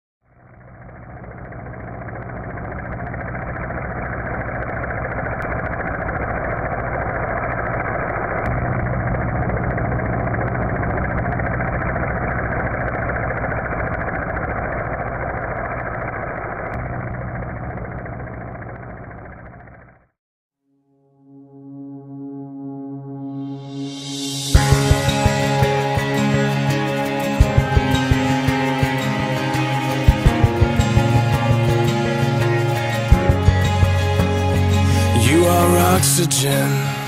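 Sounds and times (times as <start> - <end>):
quadcopter drone motors humming: 0.3 - 20.0, 24.2 - 37.0.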